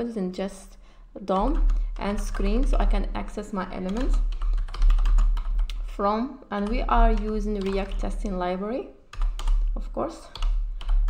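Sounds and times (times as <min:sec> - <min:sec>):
steady low hum: 0:00.4 - 0:11.0.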